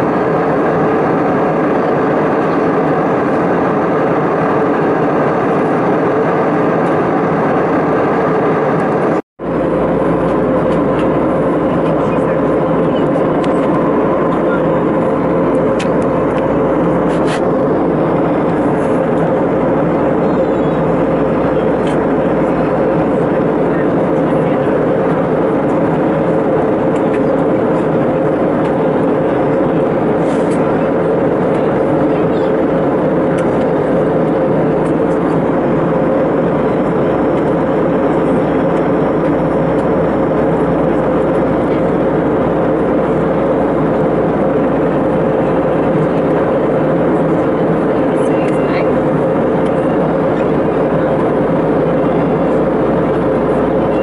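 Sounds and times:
airliner cabin noise: 0.0s - 54.0s.

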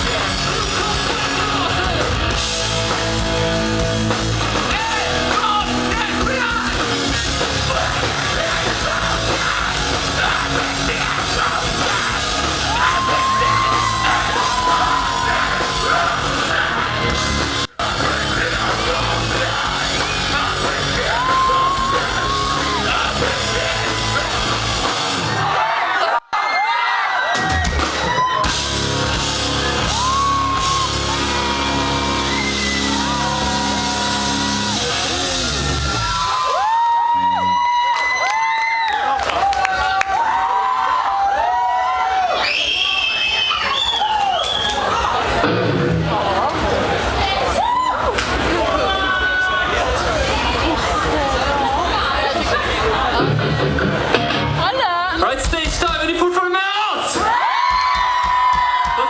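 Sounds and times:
live rock band playing: 0.0s - 25.6s, 27.3s - 38.0s, 45.1s - 47.2s, 48.2s - 56.6s
crowd cheering and whooping: 0.0s - 55.2s, 56.9s - 59.0s.

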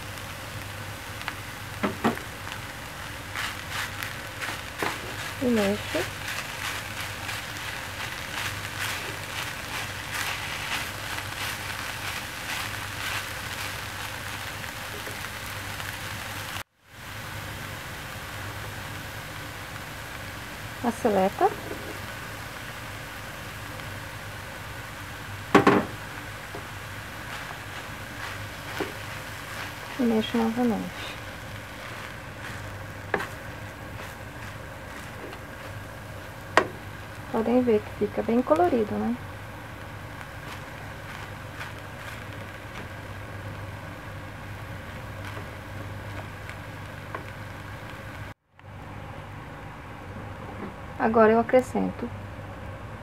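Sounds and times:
low steady hum: 0.0s - 53.0s
wooden spoon knocking on pan: 1.8s - 2.3s, 25.5s - 26.0s.

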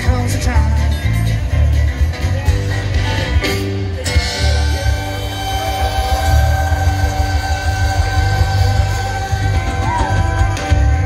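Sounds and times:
drums: 0.0s - 11.0s
guitars: 0.0s - 11.0s
heavy bass: 0.0s - 11.0s.

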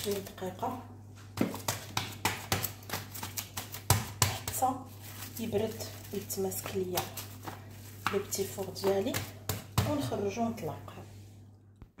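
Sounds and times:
woman speaking: 0.0s - 1.0s, 4.3s - 11.2s
steady low hum: 0.0s - 12.0s.

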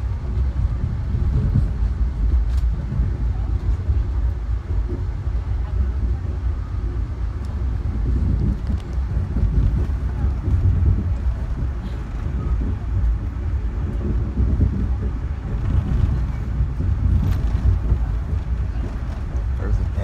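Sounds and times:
train car rumbling on track: 0.0s - 20.0s.

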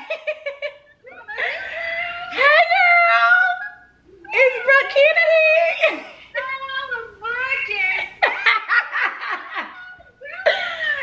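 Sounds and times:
woman laughing: 0.0s - 11.0s.

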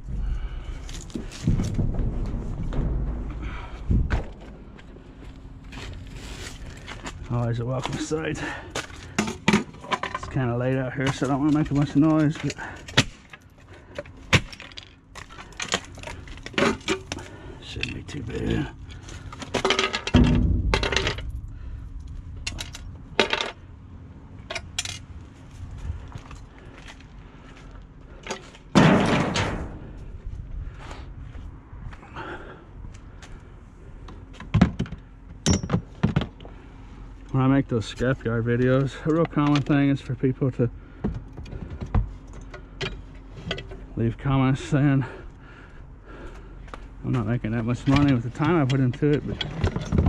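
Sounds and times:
loud clattering knocks: 1.1s - 5.1s, 19.5s - 23.6s
metal and plastic clattering: 7.8s - 23.6s, 47.7s - 50.0s.

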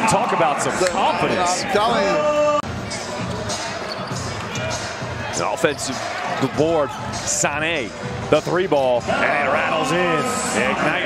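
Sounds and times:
murmur of crowd and players: 0.0s - 11.0s.

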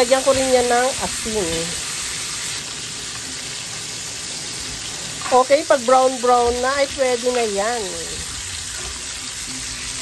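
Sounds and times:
chicken sizzling in frying pan: 0.0s - 10.0s.

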